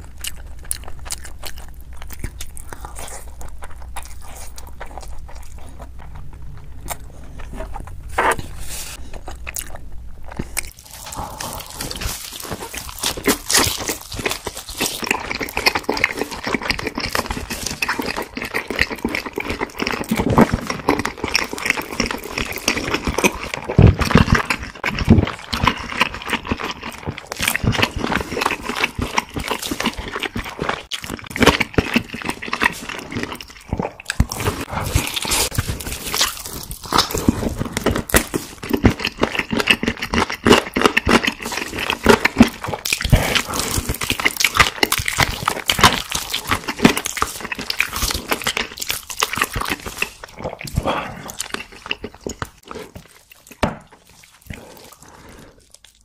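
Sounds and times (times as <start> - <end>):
chewing crunchy fried chicken: 0.0 - 56.0.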